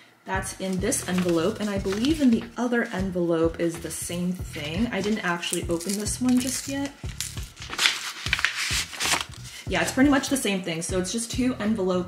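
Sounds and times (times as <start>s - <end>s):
paper rustling and crinkling: 0.6s - 3.0s, 4.9s - 9.7s.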